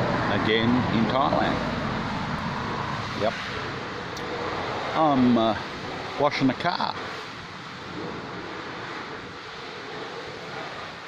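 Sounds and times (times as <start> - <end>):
pressure washer hissing: 1.5 - 11.0.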